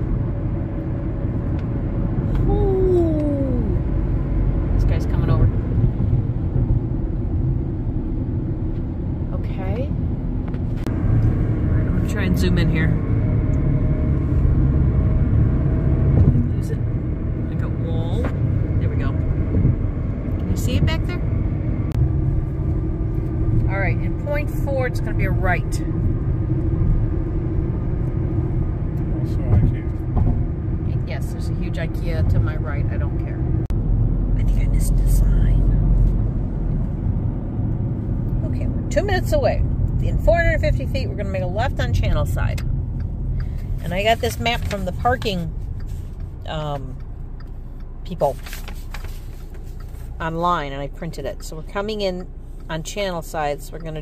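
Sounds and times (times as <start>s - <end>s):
car cabin road noise: 0.0s - 54.0s.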